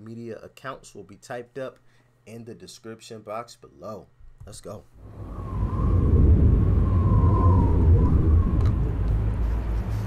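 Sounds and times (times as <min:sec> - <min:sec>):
loud low rumble: 0:05.0 - 0:10.0.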